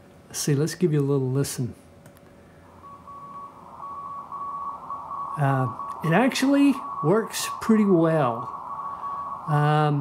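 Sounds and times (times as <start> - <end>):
receiver hiss: 1.9 - 10.0
morse code tone: 2.7 - 10.0.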